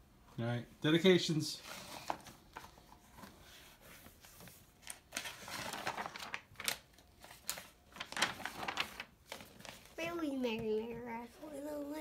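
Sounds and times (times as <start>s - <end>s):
paper pages rustling and turning: 1.6s - 12.0s.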